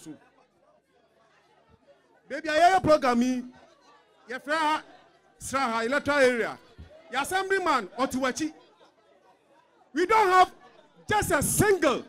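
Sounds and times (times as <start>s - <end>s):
faint crowd chatter: 0.0s - 12.0s
man speaking into a microphone: 2.3s - 3.6s, 4.3s - 8.6s, 10.0s - 12.0s.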